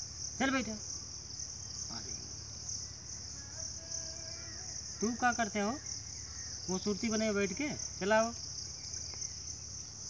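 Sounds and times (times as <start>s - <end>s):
insects singing: 0.0s - 10.0s.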